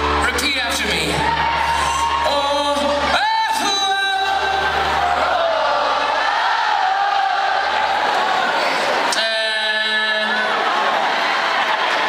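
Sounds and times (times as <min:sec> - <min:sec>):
bass and keyboard accompaniment: 0:00.0 - 0:06.2
male vocalist singing: 0:01.9 - 0:06.2, 0:09.1 - 0:10.8
audience singing along: 0:04.0 - 0:12.0.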